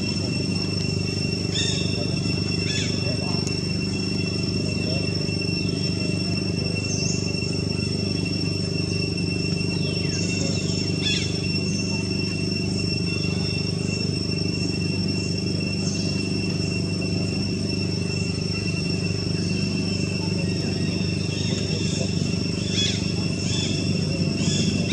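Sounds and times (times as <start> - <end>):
continuous low hum: 0.0 - 24.9
high insect drone: 0.0 - 24.9.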